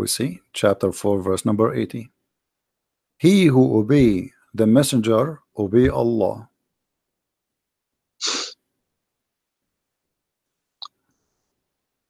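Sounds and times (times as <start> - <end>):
person's sharp breath burst: 8.2 - 8.6.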